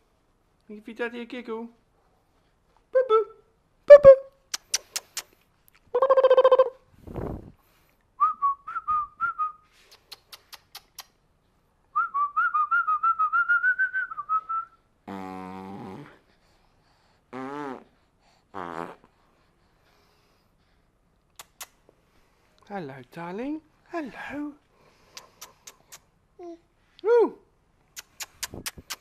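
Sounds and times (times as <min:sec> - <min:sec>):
short voiced sounds: 0:02.9 - 0:05.2.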